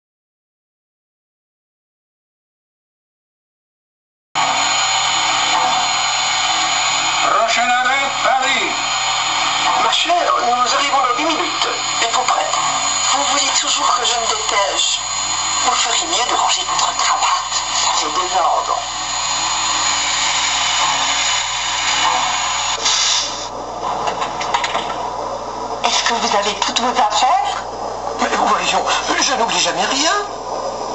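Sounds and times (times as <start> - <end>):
loud steady hiss: 4.4 - 23.6
steady background rush: 4.4 - 30.9
short sharp hiss: 19.9 - 23.5.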